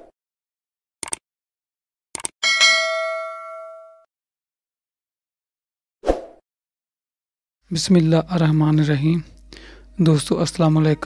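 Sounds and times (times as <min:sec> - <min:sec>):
notification bell ding: 0:02.4 - 0:04.1.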